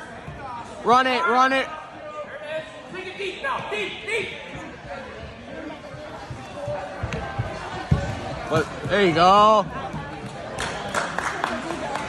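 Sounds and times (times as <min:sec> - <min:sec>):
gym crowd chatter: 0:00.0 - 0:12.0.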